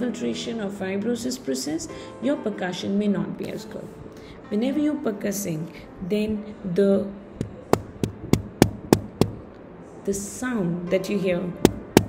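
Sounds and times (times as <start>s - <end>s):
finger percussion taps: 7.4s - 9.4s, 11.6s - 12.0s.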